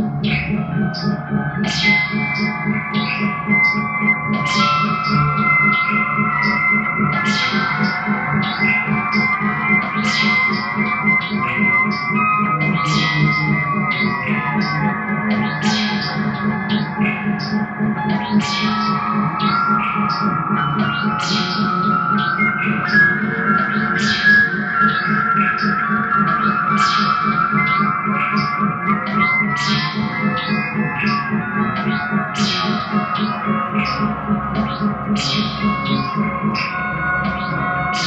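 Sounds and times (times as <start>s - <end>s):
electric guitar with effects: 0.0s - 38.0s
steady low drone: 0.0s - 38.0s.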